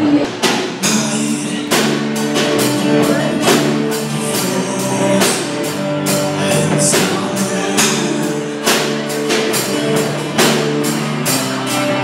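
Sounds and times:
drum kit beat with cymbals: 0.0 - 12.0
live band playing: 0.0 - 12.0.

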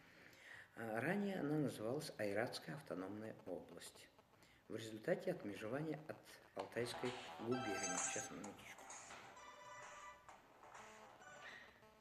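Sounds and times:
phone ringtone melody: 7.0 - 10.3, 11.2 - 11.6.

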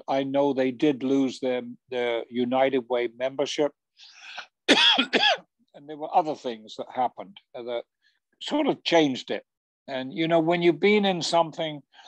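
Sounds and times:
man coughing: 4.7 - 5.5.

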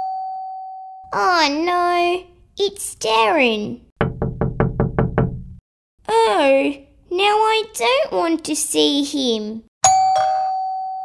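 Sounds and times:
knocking on a door: 4.0 - 5.6.

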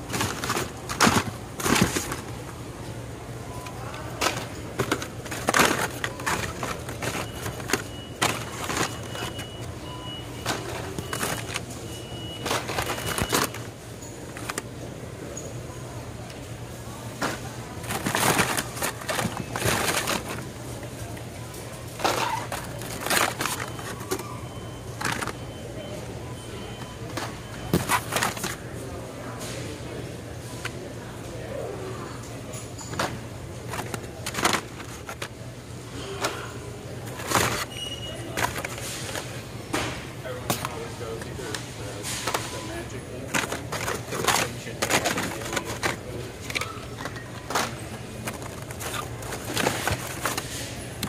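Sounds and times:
toy cars clattering in a bin: 0.0 - 2.4, 3.6 - 14.7, 17.2 - 20.5, 21.6 - 25.6, 27.6 - 28.6, 32.5 - 35.4, 37.0 - 39.3, 42.0 - 51.0
plastic packs rustling: 0.0 - 14.8, 16.4 - 29.7, 32.5 - 51.0
low store hum: 0.0 - 51.0.

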